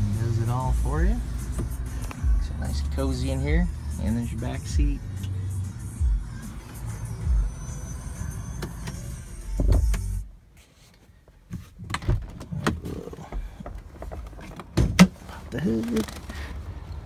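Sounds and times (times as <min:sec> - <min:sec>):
handling thumps inside car: 0:11.5 - 0:15.3.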